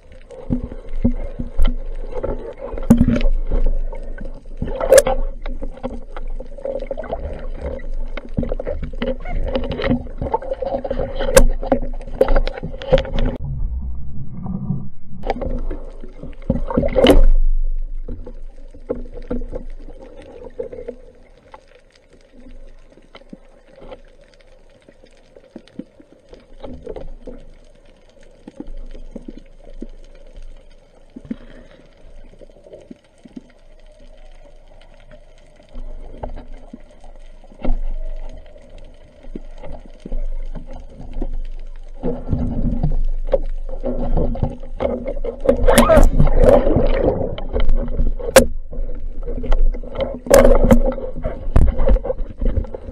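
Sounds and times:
underwater hum of moving water: 0:00.0 - 0:52.9.

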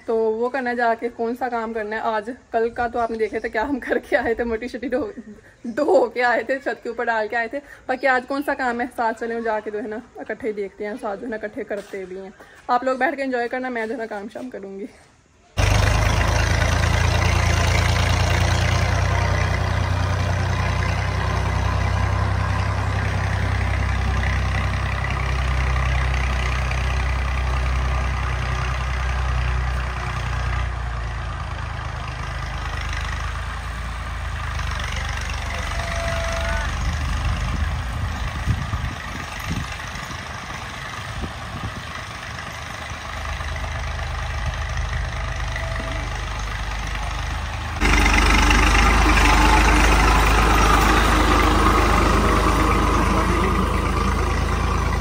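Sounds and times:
tractor diesel engine running: 0:15.6 - 0:55.0.

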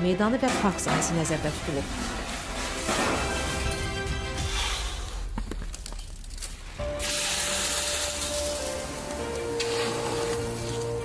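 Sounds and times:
background music with long notes: 0:00.0 - 0:05.4, 0:06.7 - 0:11.0
wet concrete sliding down steel chute: 0:07.0 - 0:11.0.

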